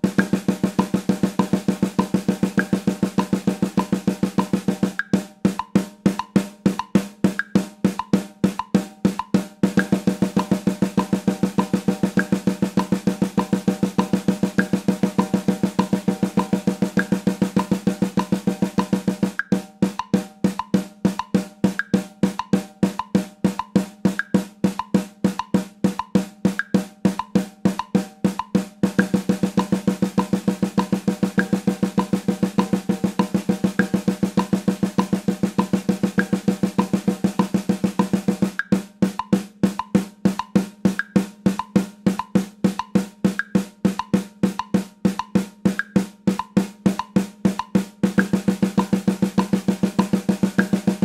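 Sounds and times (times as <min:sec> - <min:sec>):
snare drum played with sticks: 0:00.0 - 0:51.0.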